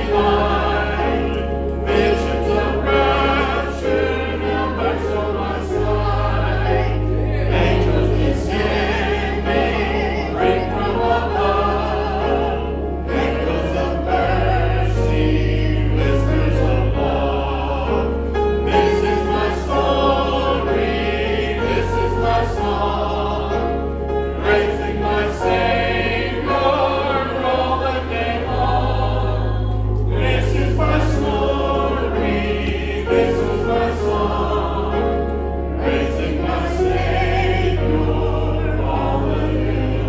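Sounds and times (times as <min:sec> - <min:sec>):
congregation singing a hymn: 0:00.0 - 0:40.0
instrumental accompaniment: 0:00.0 - 0:40.0.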